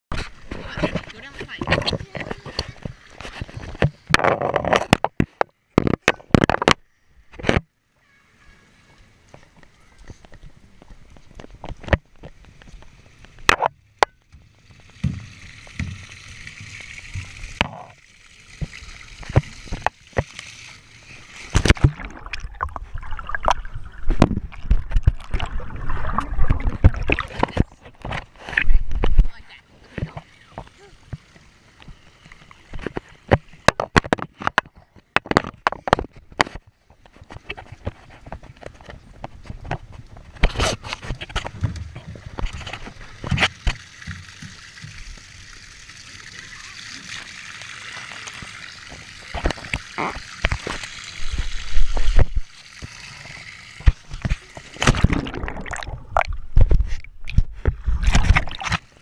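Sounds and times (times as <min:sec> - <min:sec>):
water sloshing and splashing: 0:00.1 - 0:06.7, 0:09.2 - 0:59.0
camera knocks and bumps: 0:03.7 - 0:06.8.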